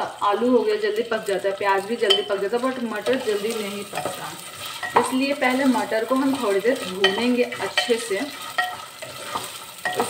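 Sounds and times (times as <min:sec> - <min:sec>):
peas sizzling in oil: 0:00.0 - 0:10.0
metal spatula scraping peas: 0:03.0 - 0:10.0.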